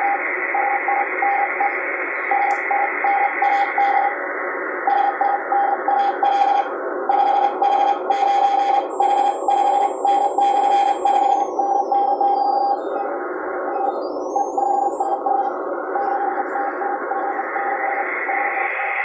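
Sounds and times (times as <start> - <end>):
radio band hiss: 0.0 - 19.0
morse code beeps: 2.3 - 4.2, 4.8 - 13.1, 13.8 - 18.6.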